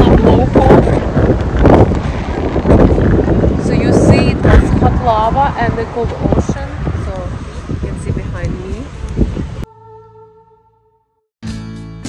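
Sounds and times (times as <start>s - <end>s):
wind buffeting microphone: 0.0s - 9.7s.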